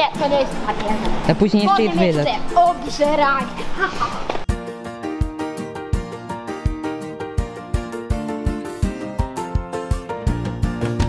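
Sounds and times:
background music with low beat: 4.5 - 11.0.

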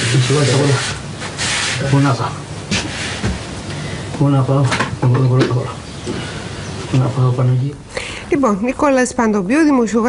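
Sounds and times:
harsh rasping hiss: 0.0 - 3.3.

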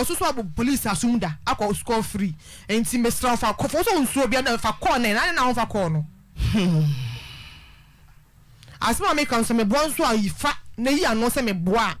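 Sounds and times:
person sighing: 6.4 - 8.0.

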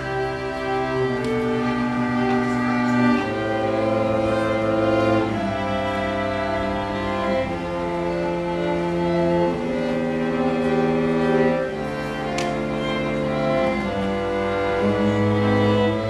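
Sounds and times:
string quartet playing slow chords: 0.0 - 16.0.

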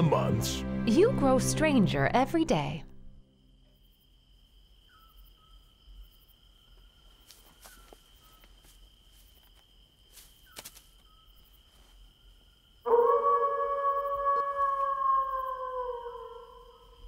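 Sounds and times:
wolf howling: 12.9 - 17.0.

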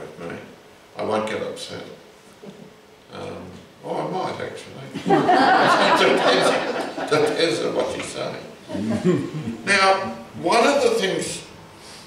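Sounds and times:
man speaking: 3.1 - 5.0, 5.8 - 11.5
person humming: 8.8 - 9.6.

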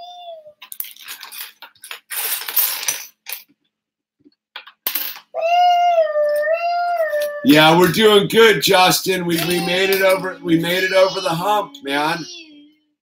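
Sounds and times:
plastic bricks clicking and rattling: 0.6 - 3.5
high-pitched vocal note: 7.3 - 12.5.

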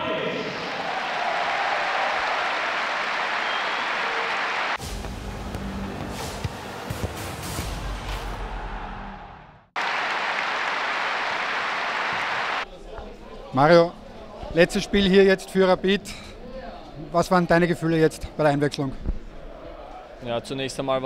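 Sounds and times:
stadium crowd applauding: 0.4 - 4.8, 8.2 - 12.7.

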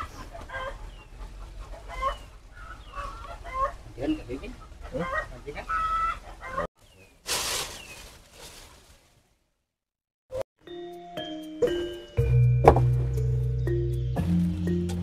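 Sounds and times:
chickens clucking: 0.0 - 6.7
hiss-like rustle: 7.2 - 9.2.

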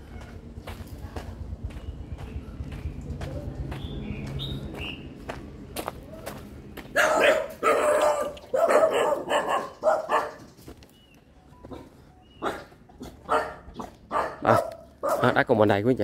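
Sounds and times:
dog barking: 7.0 - 10.5, 11.7 - 15.5.

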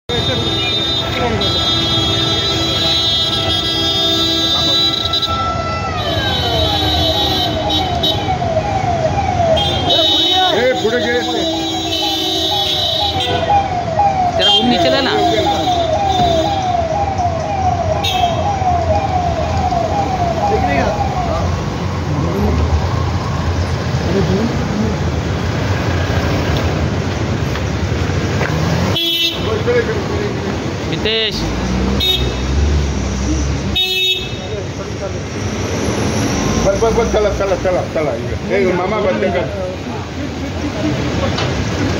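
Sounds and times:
vehicle engines running: 0.1 - 41.9
people's voices: 4.2 - 25.7, 29.4 - 41.9
electronic siren sweeping: 6.6 - 24.0.

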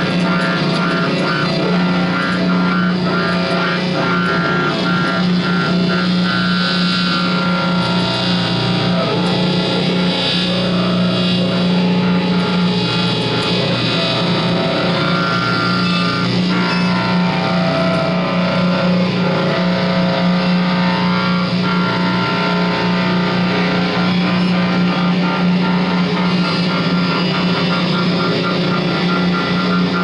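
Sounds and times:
electric guitar drone: 0.0 - 30.0.

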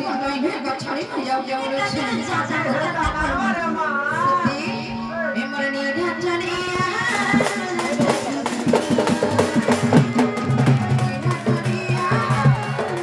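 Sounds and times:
person singing: 2.7 - 13.0
barrel drum and stand drum beating: 6.7 - 13.0.

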